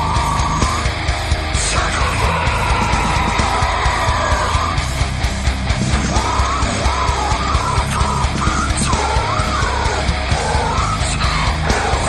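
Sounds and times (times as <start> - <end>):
distorted guitars: 0.0 - 12.0.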